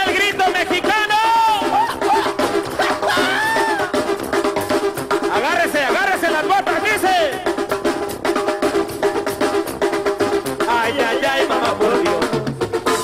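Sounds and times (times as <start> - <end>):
live band music: 0.0 - 13.0
steady drum beat: 0.0 - 13.0
person calling out: 1.1 - 4.0.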